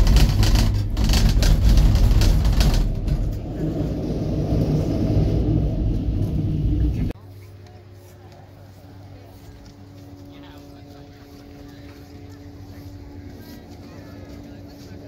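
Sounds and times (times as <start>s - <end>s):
clattering: 0.0s - 5.6s
gondola machinery rumble: 0.0s - 15.0s.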